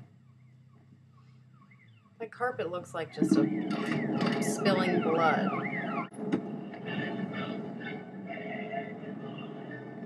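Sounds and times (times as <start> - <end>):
faint siren wailing: 0.0 - 10.0
low steady hum: 0.0 - 10.0.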